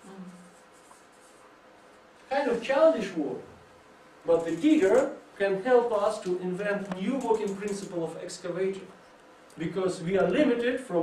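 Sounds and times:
marker pen scratching on paper: 0:00.4 - 0:01.4.

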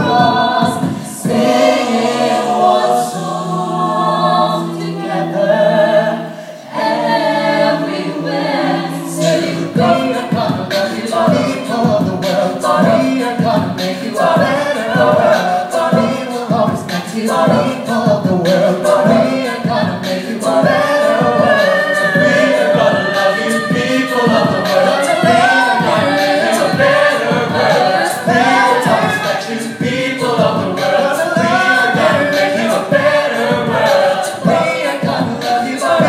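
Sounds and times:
group singing a cappella: 0:00.0 - 0:36.0.

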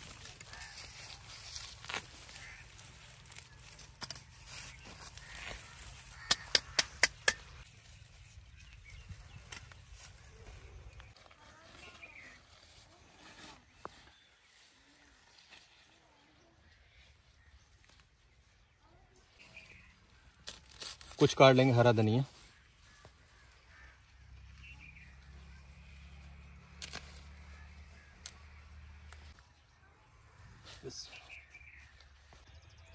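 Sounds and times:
plants rustling: 0:00.0 - 0:06.5
sharp clicks: 0:06.2 - 0:07.6.

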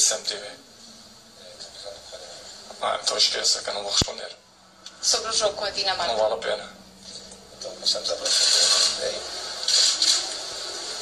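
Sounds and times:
loud hiss: 0:08.2 - 0:11.0.

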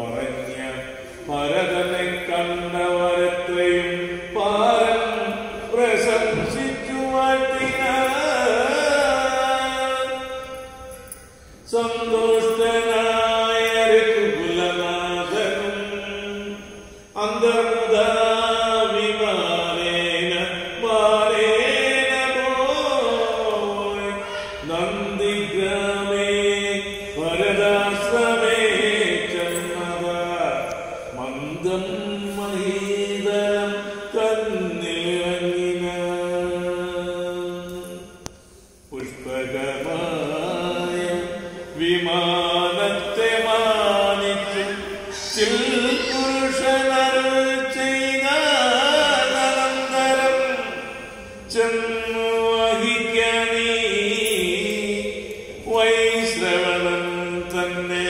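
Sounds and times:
man chanting: 0:00.0 - 0:38.2, 0:38.9 - 0:58.0.

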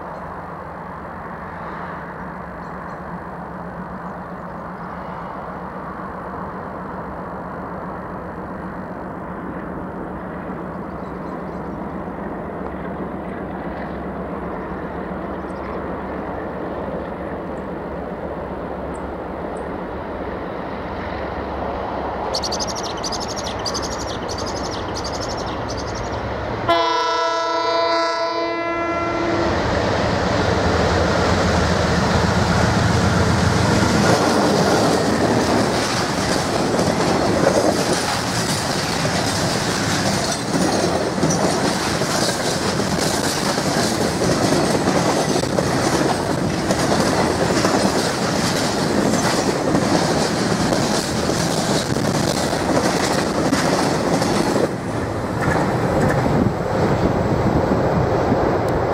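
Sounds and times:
locomotive horn blast: 0:26.7 - 0:29.6
locomotive engine rumbling: 0:28.7 - 0:58.9
freight wagons clacking over rails: 0:33.8 - 0:56.6.

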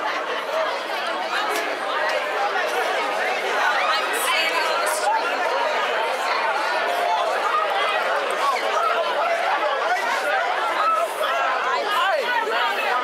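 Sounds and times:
street crowd talking: 0:00.0 - 0:13.0.

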